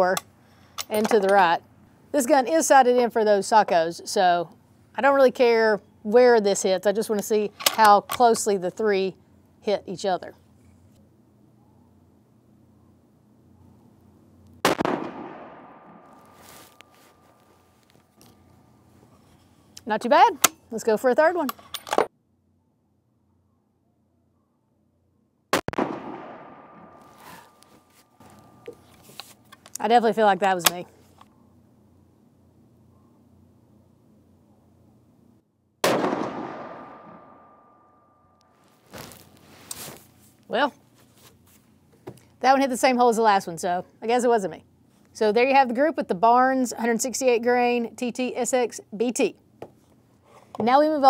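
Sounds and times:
rifle shot with echo: 14.6 - 16.3, 25.6 - 27.5, 35.8 - 37.6.

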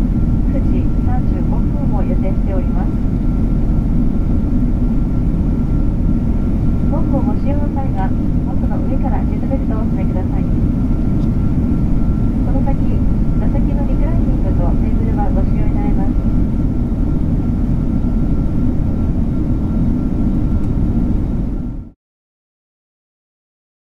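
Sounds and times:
faint steady whine: 0.0 - 21.9
airliner engine and airflow rumble: 0.0 - 22.0.

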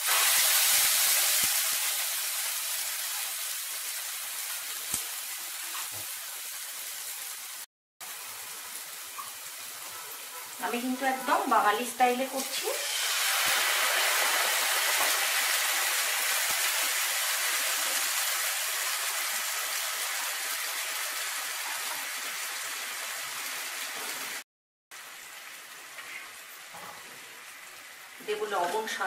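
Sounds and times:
batter sizzling in hot oil: 0.0 - 29.0.

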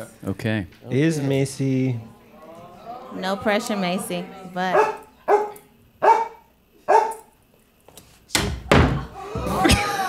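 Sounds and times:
dog barking: 4.7 - 7.3.

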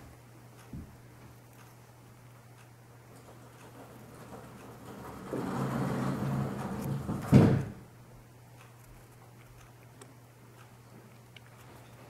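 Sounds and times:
air conditioner humming: 0.0 - 12.0.

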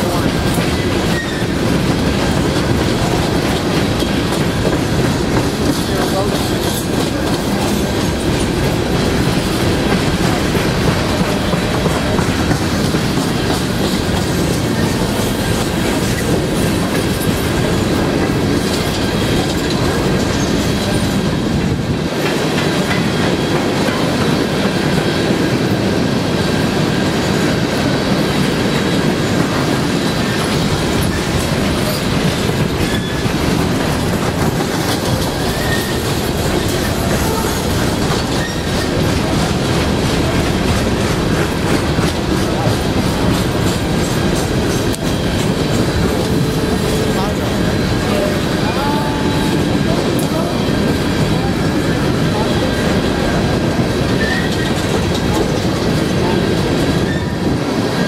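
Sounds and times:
train wheels clickety-clack: 0.0 - 58.0
faint wheel squeal: 35.6 - 36.0.

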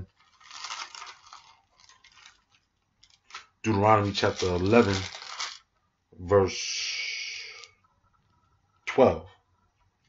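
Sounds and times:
paper pages being turned: 0.0 - 5.6.

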